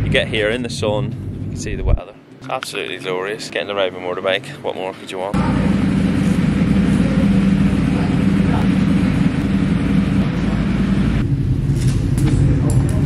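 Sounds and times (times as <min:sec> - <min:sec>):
engine droning: 0:05.3 - 0:13.0.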